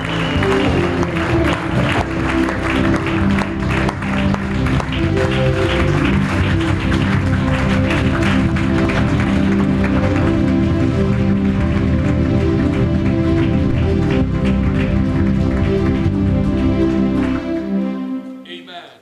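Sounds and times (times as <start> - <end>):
congregation applauding: 0.0 - 17.9
music with held chords: 0.0 - 18.6.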